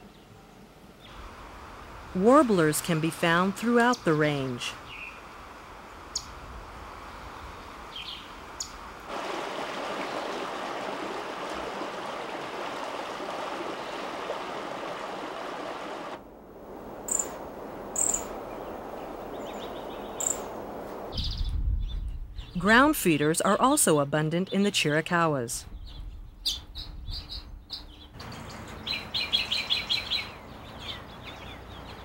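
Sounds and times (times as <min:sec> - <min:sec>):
songbirds chirping: 0:00.0 - 0:01.3, 0:02.2 - 0:05.4, 0:07.0 - 0:08.9, 0:17.0 - 0:32.0
rushing outdoor background: 0:00.4 - 0:23.8
bird trill: 0:17.1 - 0:17.4, 0:18.0 - 0:20.5, 0:25.7 - 0:32.0.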